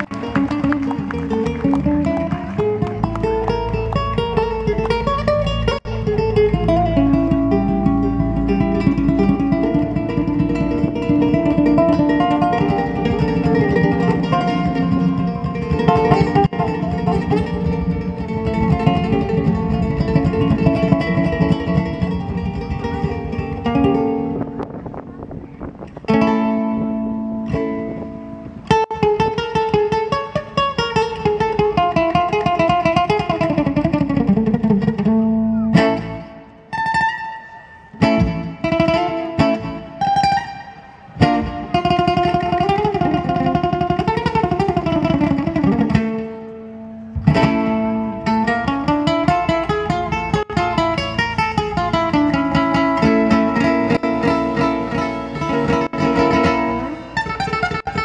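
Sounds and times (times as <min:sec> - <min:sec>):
ukulele picked and strummed: 0:00.0 - 0:58.0.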